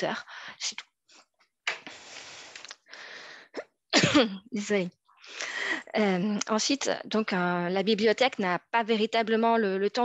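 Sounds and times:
breathing close to microphone: 1.9s - 3.6s, 5.1s - 6.0s.

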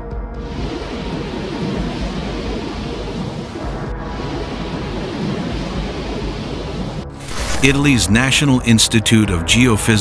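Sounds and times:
volcano erupting rumble: 0.4s - 8.4s.

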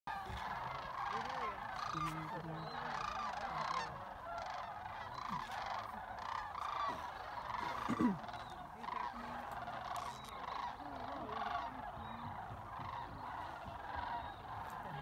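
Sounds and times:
cranes rattling calls: 0.1s - 15.0s.

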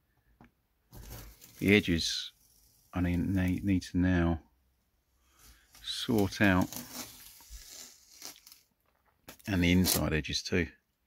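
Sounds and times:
masking tape being peeled: 5.9s - 8.7s, 9.3s - 10.1s.

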